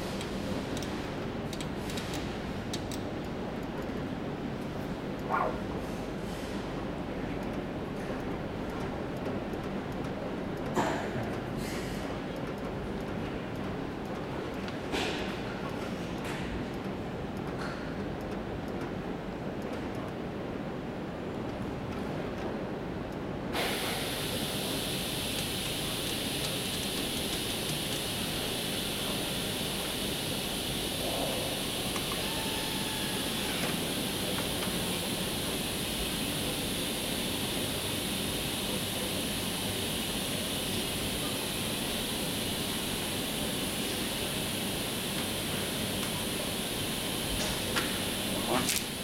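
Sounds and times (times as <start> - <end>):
ventilation and fan hiss: 0.0 - 49.0.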